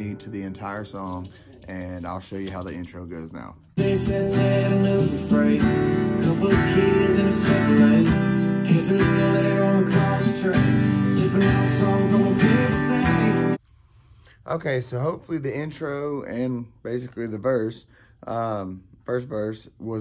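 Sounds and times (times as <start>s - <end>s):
acoustic guitar strumming: 3.8s - 13.6s.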